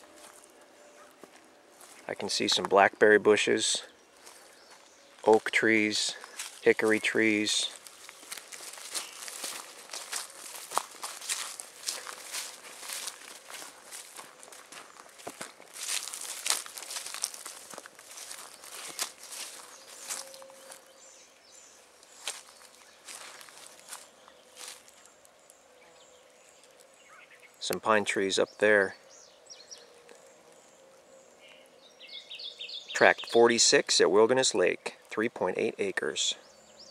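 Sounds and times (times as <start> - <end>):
footsteps through grass and brush: 0.0 - 2.6, 4.1 - 27.6.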